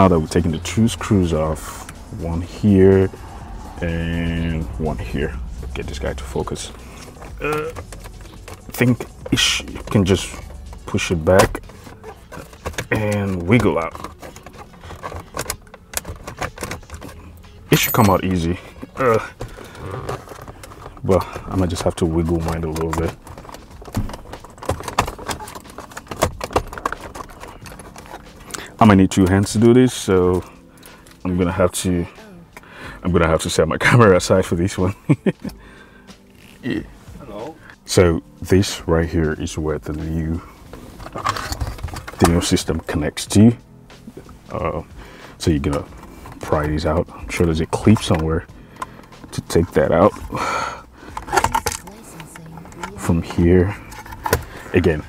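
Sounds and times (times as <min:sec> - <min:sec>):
handling noise: 0:00.0 - 0:29.8, 0:39.8 - 0:50.5, 0:51.1 - 0:55.0
plastic trim clicks and rattles: 0:51.1 - 0:53.0.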